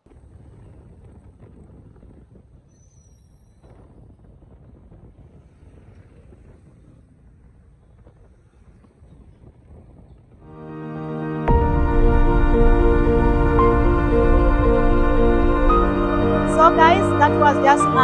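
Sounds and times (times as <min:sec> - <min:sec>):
wind on microphone: 0:00.0 - 0:10.5
motorcycles and cars passing: 0:04.0 - 0:10.5.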